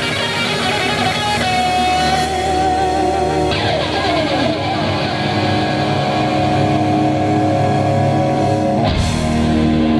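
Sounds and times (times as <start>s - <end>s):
guitar note sliding down: 0.0s - 9.9s
hard rock band playing: 0.0s - 9.9s
ringing guitar chord: 0.0s - 9.9s.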